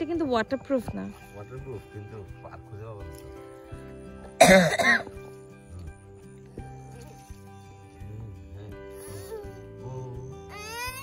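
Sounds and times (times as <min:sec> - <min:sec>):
background music: 0:00.0 - 0:11.0
person coughing: 0:04.4 - 0:05.1.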